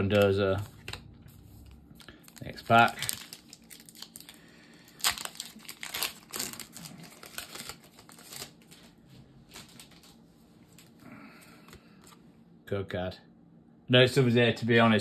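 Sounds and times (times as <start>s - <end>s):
foil wrapper tearing and crinkling: 1.6s - 8.9s, 9.5s - 10.2s.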